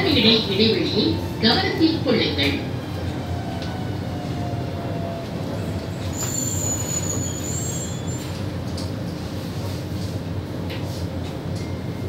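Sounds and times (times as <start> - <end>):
metro train low running hum: 0.0 - 12.0.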